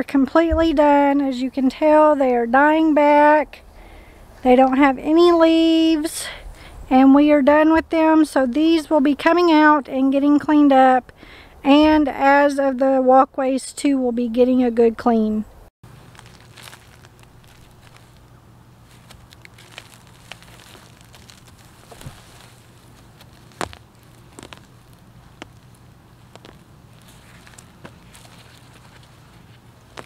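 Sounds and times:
faint steady low hum: 0.0 - 30.0
dry stems crackling and snapping: 15.9 - 30.0
footsteps: 16.0 - 30.0.

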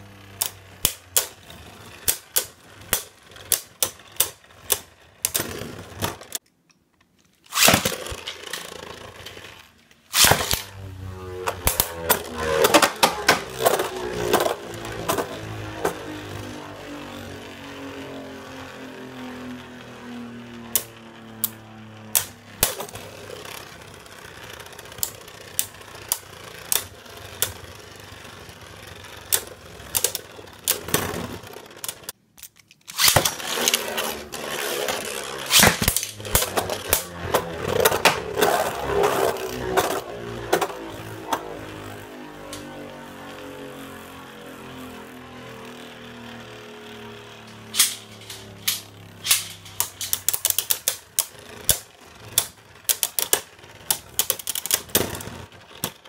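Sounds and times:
spinning tops clashing: 7.4 - 10.8, 32.9 - 41.0, 47.4 - 55.4
falling hum of slowing top: 7.8 - 32.1, 33.3 - 55.9.

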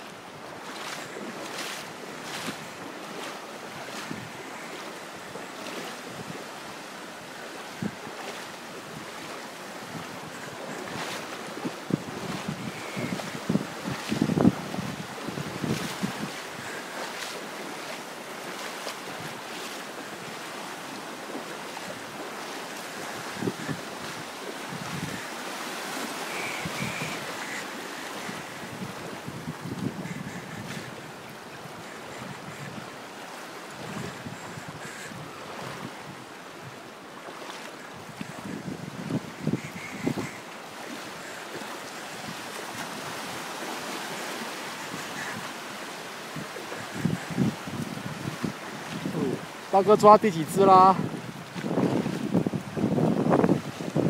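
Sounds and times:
sea surf washing: 0.0 - 54.0
wind buffeting microphone: 0.7 - 6.5, 7.7 - 17.9, 22.8 - 25.4, 26.2 - 33.1, 33.7 - 36.8, 38.0 - 40.9, 46.3 - 54.0.

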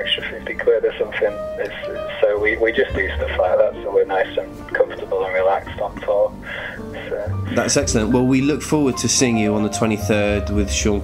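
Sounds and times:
man speaking over telephone: 0.0 - 6.3, 7.0 - 8.1
quiet background music: 0.0 - 11.0.

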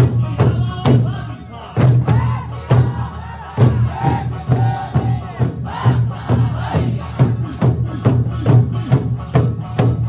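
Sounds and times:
amplified folk music: 0.0 - 10.0
large barrel drums struck: 0.0 - 10.0.

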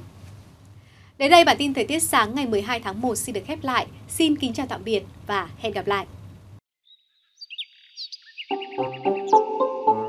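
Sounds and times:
birds chirping: 6.8 - 9.4.

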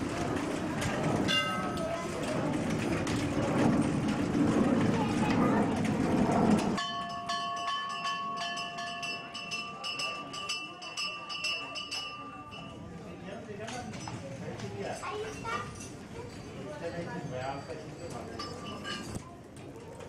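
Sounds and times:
dense rumbling noise: 0.0 - 6.8
bell-like ringing tones: 6.8 - 13.0.

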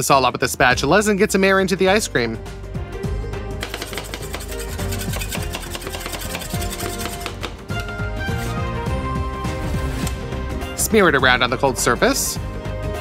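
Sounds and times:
background music: 0.0 - 13.0
metal spatulas tapping and scraping: 3.6 - 7.6.

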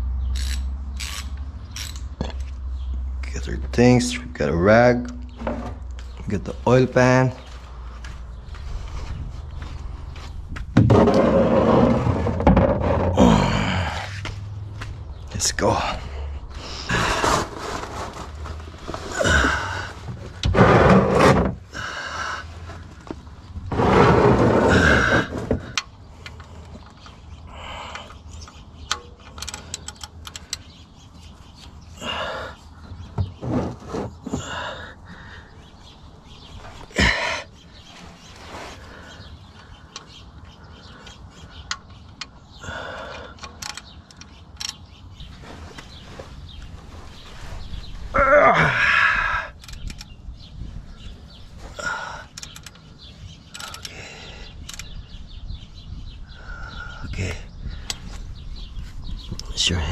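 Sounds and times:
wrench metal clicks and knocks: 28.0 - 30.7, 43.4 - 44.8, 52.3 - 52.8, 53.5 - 54.0.

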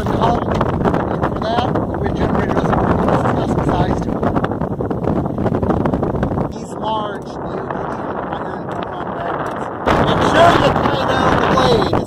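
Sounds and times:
wind on microphone: 0.0 - 12.0
person speaking: 6.5 - 12.0.

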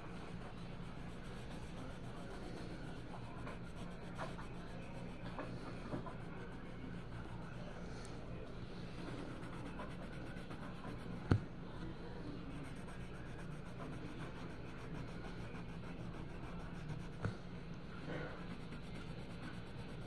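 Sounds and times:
pencil scratching on paper: 0.0 - 7.8, 8.7 - 11.4, 12.4 - 17.4, 18.0 - 20.0
steady low hum: 0.0 - 20.0.

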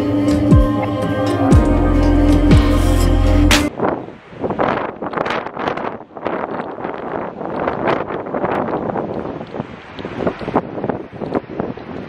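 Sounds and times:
wind buffeting microphone: 3.6 - 12.0.

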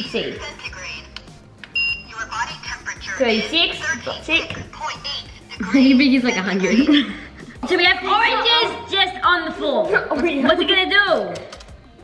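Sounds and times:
thermometer short high beep: 1.8 - 2.2.

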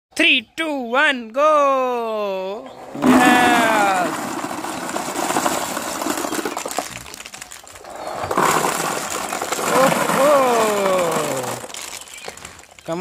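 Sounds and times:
ping pong balls pouring and bouncing: 2.9 - 13.0.

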